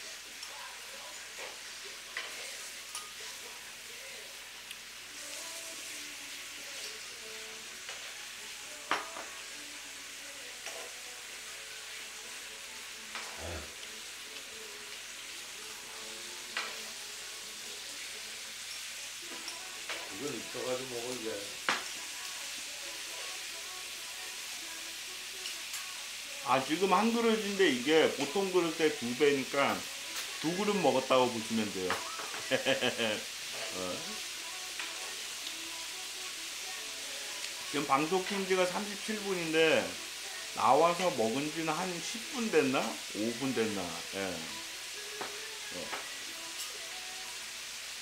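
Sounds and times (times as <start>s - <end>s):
meat sizzling in a pan: 0.0s - 48.0s.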